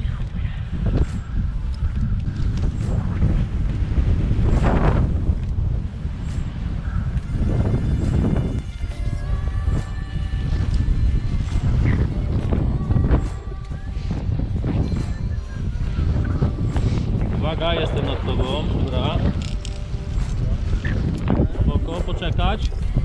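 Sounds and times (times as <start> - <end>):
rope and gear rustling: 0.0 - 22.8
wind buffeting microphone: 0.0 - 23.0.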